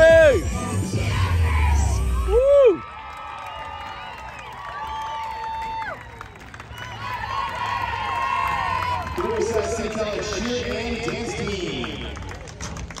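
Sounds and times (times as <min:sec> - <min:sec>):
crowd cheering and yelling: 0:00.0 - 0:12.3.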